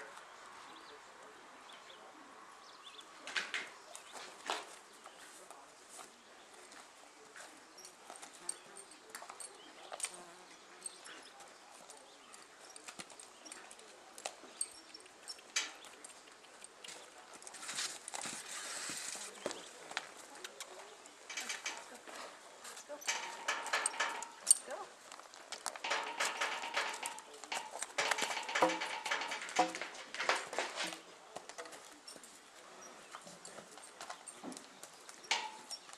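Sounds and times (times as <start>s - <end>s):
horse hooves on dirt: 3.8s - 35.9s.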